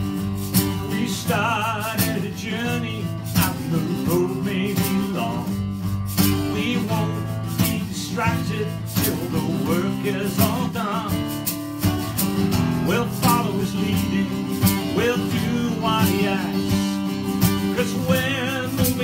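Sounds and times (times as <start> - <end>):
acoustic guitar strumming: 0.0 - 19.0
man singing worship song: 0.7 - 5.6, 6.4 - 11.3, 12.8 - 19.0.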